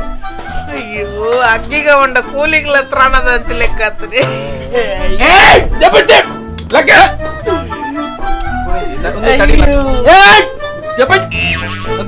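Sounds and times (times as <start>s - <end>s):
background music with low bass: 0.0s - 12.0s.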